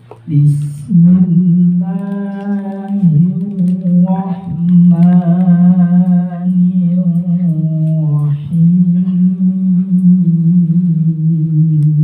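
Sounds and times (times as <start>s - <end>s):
man chanting through a microphone: 0.2s - 12.0s.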